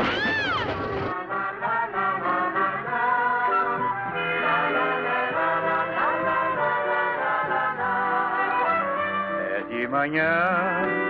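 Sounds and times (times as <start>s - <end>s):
cat yowling: 0.0s - 0.7s
noisy clatter: 0.0s - 1.2s
brass music: 0.6s - 10.3s.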